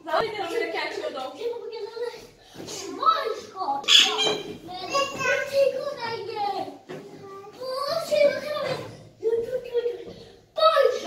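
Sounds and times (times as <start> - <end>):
children shouting and babbling: 1.7 - 11.0.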